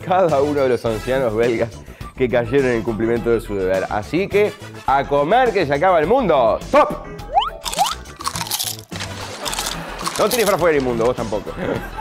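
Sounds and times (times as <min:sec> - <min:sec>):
background music: 0:00.0 - 0:12.0
crunching and chewing: 0:07.6 - 0:11.1.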